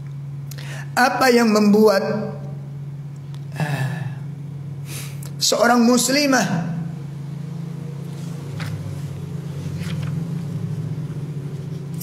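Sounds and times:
low motor hum: 0.0 - 12.0.

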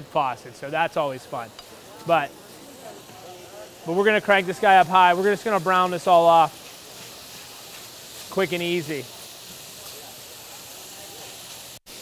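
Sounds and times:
meat sizzling in a pan: 0.5 - 12.0.

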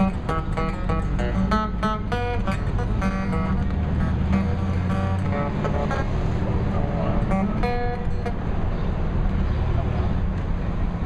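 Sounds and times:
acoustic guitar notes: 0.0 - 8.9
low rumble of street traffic: 0.0 - 11.0.

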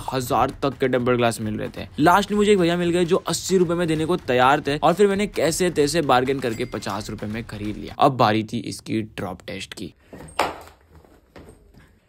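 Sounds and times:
phone clattering on floor: 10.2 - 11.6.

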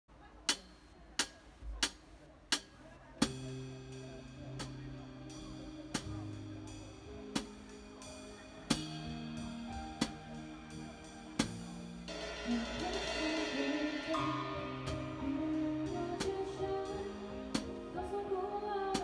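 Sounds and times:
drum kit playing: 0.5 - 19.0
cymbal wash: 2.6 - 19.0
backing track bass notes: 3.2 - 19.0.

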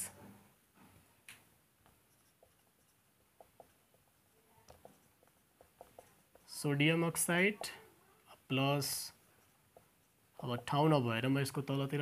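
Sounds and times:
marker scraping on whiteboard: 1.8 - 7.9, 8.5 - 11.0.

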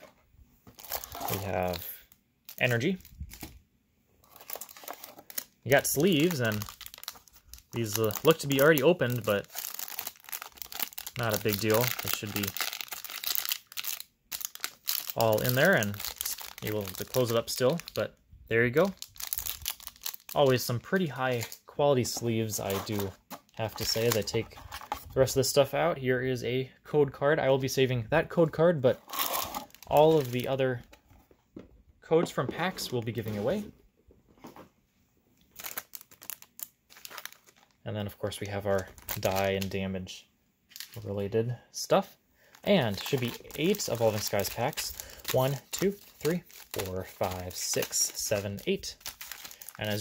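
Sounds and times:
plastic wrapping crinkling: 0.7 - 3.6, 4.2 - 18.0, 18.8 - 25.0, 29.0 - 30.6, 35.5 - 37.8, 38.4 - 39.8, 42.4 - 50.0.

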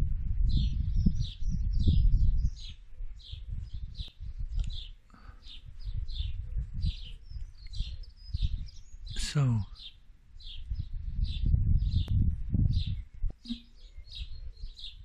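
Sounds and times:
small birds chirping: 0.4 - 15.0.

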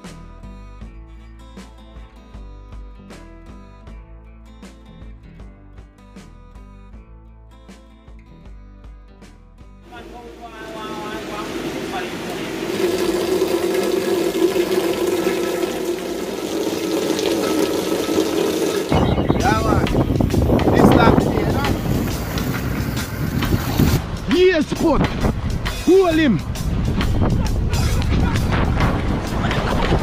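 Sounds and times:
music: 0.0 - 30.0
rain downpour: 9.9 - 19.8
voices: 9.9 - 20.0, 20.6 - 22.6.

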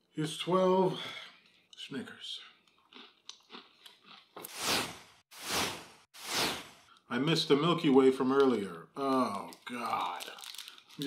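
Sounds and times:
whoosh sound effects: 4.5 - 6.8.

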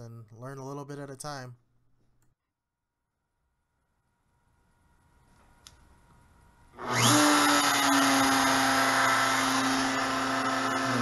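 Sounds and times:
router spindle spinning: 6.8 - 11.0.

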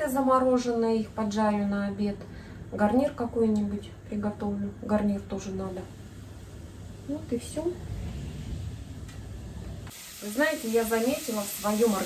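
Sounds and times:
low steady rumble: 0.0 - 9.9.

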